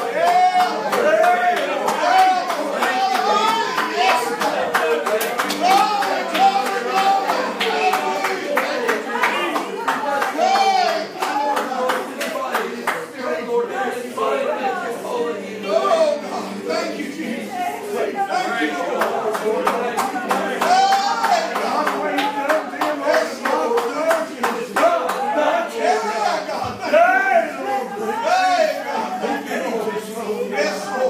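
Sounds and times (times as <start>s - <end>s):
people clapping in a steady beat: 0.0s - 13.2s, 18.8s - 25.6s
voices calling out: 0.0s - 31.0s.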